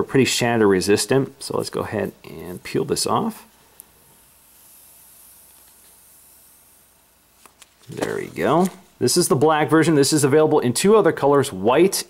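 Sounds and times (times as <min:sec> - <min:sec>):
plastic film peeling: 0:05.4 - 0:06.6, 0:07.4 - 0:08.9.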